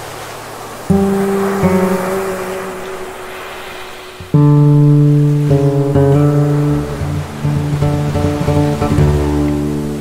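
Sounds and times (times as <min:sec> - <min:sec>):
ocean surf: 0:00.0 - 0:10.0
acoustic guitar notes ringing: 0:00.9 - 0:10.0.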